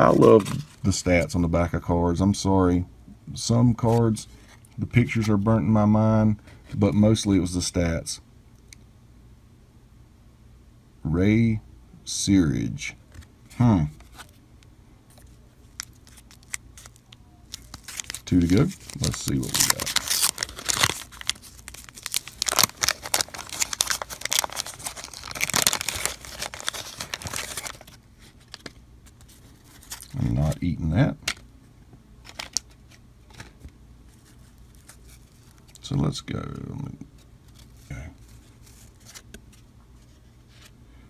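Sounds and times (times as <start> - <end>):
cardboard cards clicking and rustling: 15.1 - 30.2, 32.2 - 35.8
waxed paper wrapper crinkling: 15.1 - 30.6, 32.2 - 35.9, 37.2 - 40.8.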